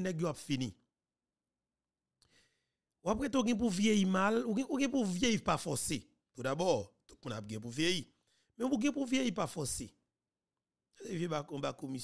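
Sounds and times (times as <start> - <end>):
faint breath: 2.2 - 2.8.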